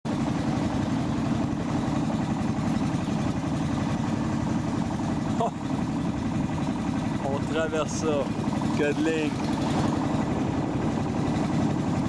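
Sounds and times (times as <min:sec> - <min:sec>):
boat motor droning: 0:00.1 - 0:12.0.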